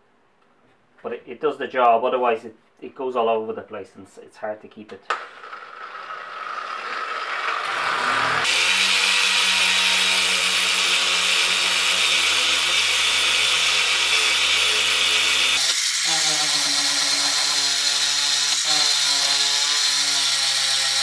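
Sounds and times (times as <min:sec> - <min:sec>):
electric orbital sander running: 0:05.1 - 0:21.0.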